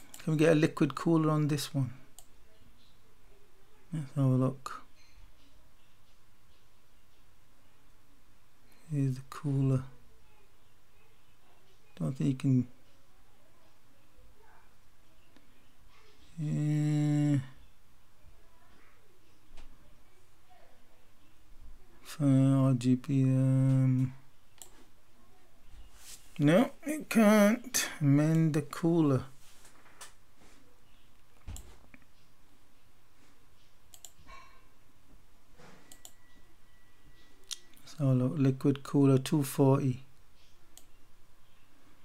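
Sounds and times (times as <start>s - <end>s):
low room hiss: 0.0s - 42.0s
computer mouse clicks: 24.5s - 24.8s, 33.9s - 34.2s, 35.9s - 36.2s
faint high-pitched tone: 35.7s - 38.0s.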